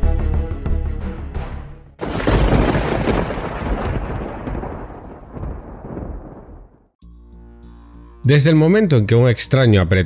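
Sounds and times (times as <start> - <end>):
thunder rumbling: 2.0 - 6.9.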